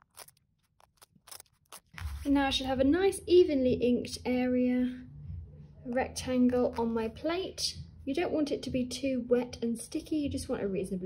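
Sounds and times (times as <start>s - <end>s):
masking tape peeling crackles: 0.0s - 2.4s.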